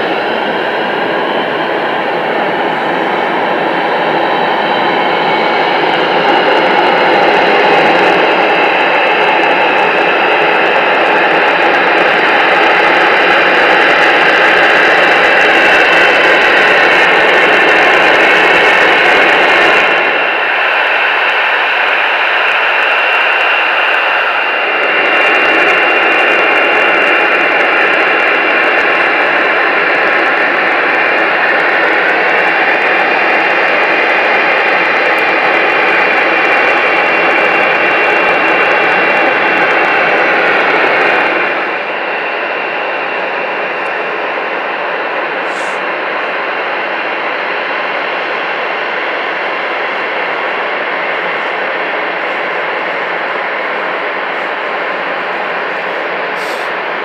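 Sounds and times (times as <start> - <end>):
jet engines idling: 0.0 - 57.0.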